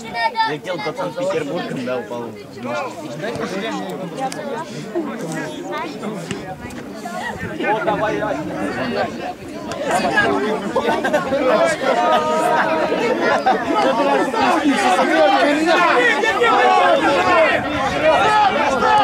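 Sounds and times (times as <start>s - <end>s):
voices talking and shouting: 0.0s - 19.0s.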